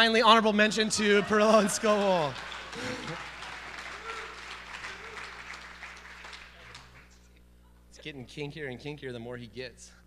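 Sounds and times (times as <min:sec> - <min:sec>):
audience applauding: 0:00.9 - 0:07.2.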